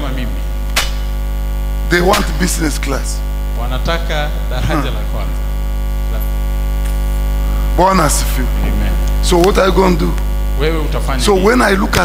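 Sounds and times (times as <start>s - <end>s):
electrical mains hum: 0.0s - 12.0s
man's voice: 1.9s - 5.4s, 7.6s - 12.0s.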